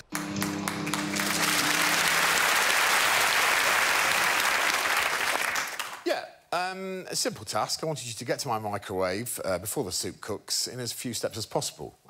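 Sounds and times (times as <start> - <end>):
studio audience applauding: 0.0 - 6.1.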